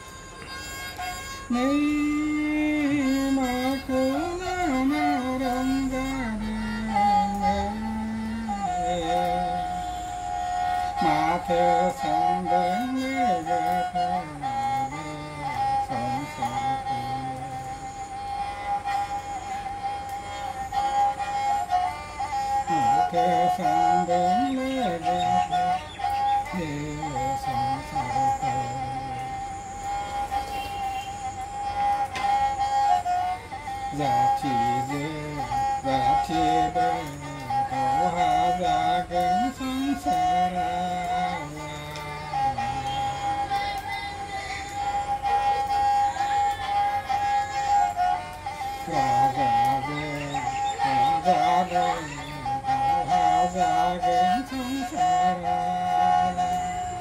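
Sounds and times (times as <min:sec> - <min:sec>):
bowed fiddle high note: 0:00.0 - 0:57.0.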